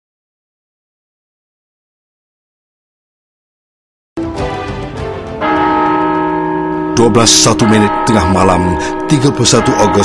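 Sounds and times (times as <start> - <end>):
clock tower bell striking: 5.4 - 10.0.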